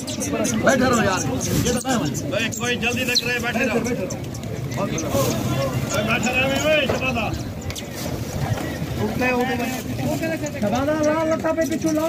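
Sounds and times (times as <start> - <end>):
wind buffeting microphone: 0.7 - 11.2.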